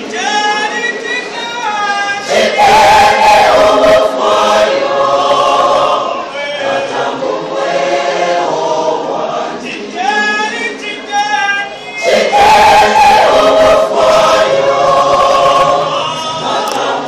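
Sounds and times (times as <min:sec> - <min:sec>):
choir singing gospel: 0:00.0 - 0:17.0.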